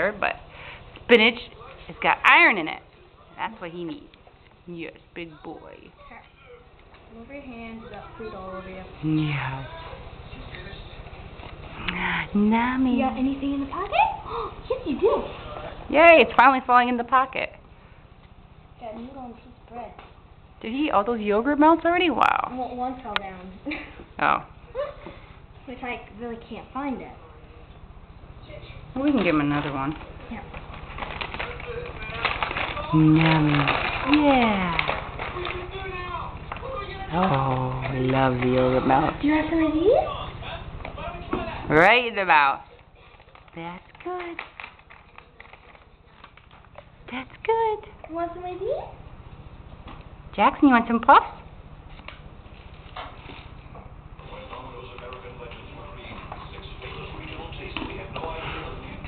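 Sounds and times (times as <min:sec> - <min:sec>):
faint voices: 0:30.0 - 0:41.7, 0:54.2 - 0:59.0.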